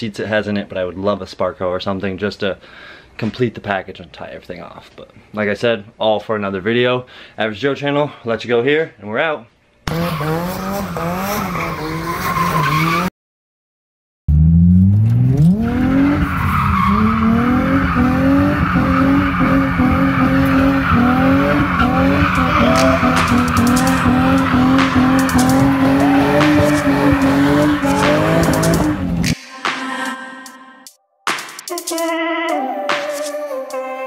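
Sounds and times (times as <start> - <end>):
car engine revving hard: 9.9 - 13.1, 14.3 - 29.4
tyres squealing: 15.8 - 29.3.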